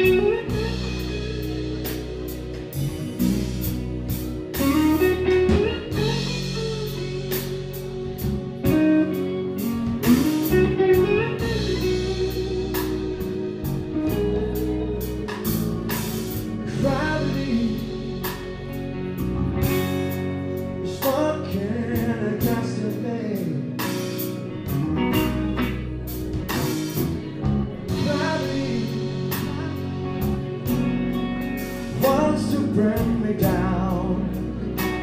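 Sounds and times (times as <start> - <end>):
electric guitar lead lines: 0.0 - 35.0
live blues rock band: 0.0 - 35.0.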